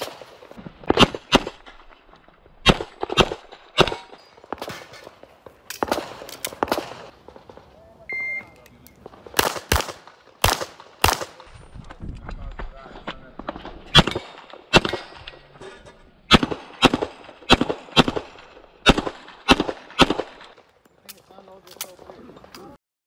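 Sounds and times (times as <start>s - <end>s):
shot timer beep: 8.1s - 8.6s.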